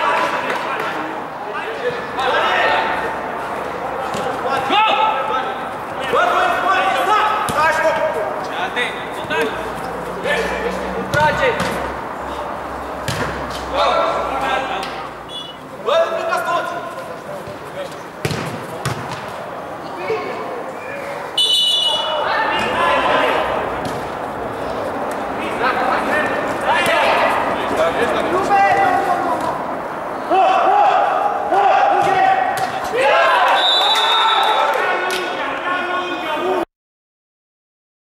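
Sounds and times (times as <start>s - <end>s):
players shouting: 0.0s - 17.5s, 18.2s - 36.6s
ball being kicked: 13.0s - 13.6s, 18.2s - 19.4s, 23.8s - 24.1s.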